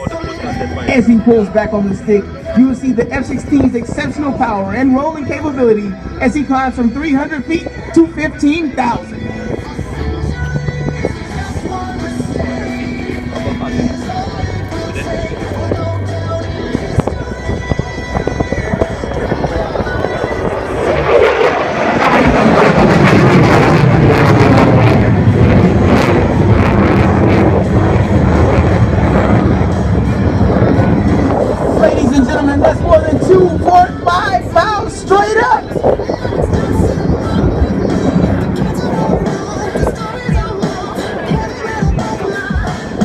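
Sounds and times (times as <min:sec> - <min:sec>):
music over public address: 0:00.0 - 0:43.0
fighter jet roaring overhead: 0:16.4 - 0:43.0.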